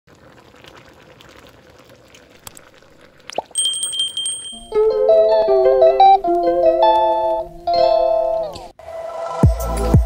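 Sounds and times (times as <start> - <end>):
sauce bubbling and popping: 0.1 - 3.6
high ringing chime: 3.6 - 4.8.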